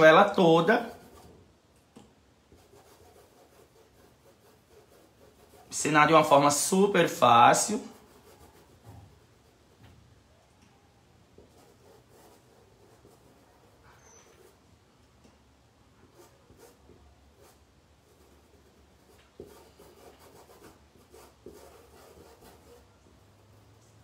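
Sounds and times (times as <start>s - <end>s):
paintbrush rubbing on cloth: 2.5s - 9.8s.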